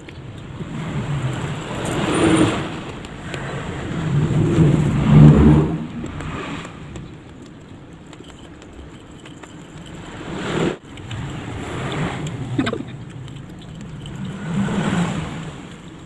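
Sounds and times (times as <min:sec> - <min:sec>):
vehicles passing by: 0:00.0 - 0:16.0.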